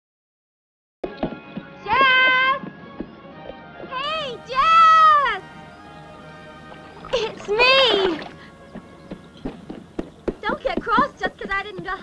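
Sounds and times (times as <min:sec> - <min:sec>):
horse hooves clip-clopping: 0:01.0 - 0:05.5, 0:06.6 - 0:12.0.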